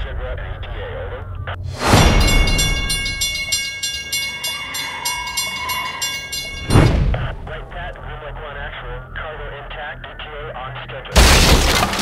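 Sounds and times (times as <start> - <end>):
railroad crossing bell ringing: 2.0 - 6.9.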